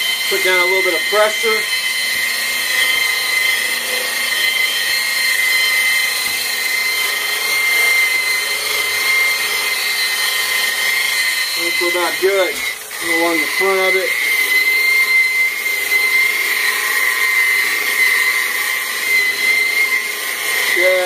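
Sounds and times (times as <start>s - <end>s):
electric polisher whining: 0.0s - 21.0s.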